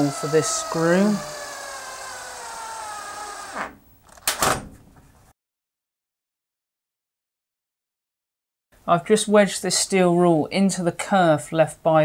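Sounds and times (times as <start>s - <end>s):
power drill driving screw: 0.0s - 3.8s.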